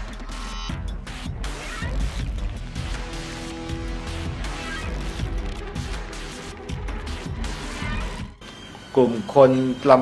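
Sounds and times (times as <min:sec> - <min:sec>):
background music: 0:00.0 - 0:10.0
man speaking: 0:08.9 - 0:10.0.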